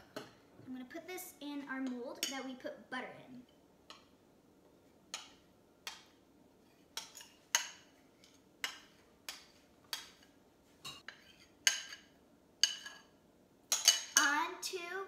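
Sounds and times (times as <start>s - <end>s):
metal spoon clinking on ceramic bowl: 13.7s - 14.2s.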